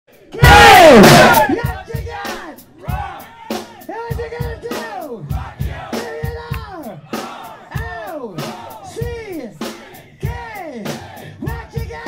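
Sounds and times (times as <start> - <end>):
distorted singer shout: 0.3 - 5.1
low drum thumps: 0.4 - 2.1.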